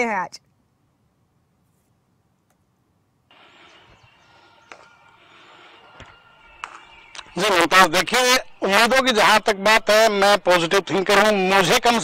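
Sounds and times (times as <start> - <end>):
outdoor background hiss: 0.0 - 12.0.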